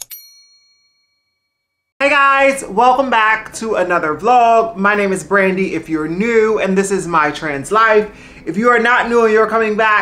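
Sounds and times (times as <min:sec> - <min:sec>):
notification bell ding: 0:00.0 - 0:01.5.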